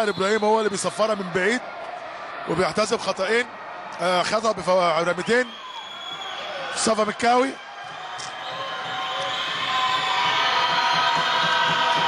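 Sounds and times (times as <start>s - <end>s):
crowd noise in a hall: 0.0s - 12.0s.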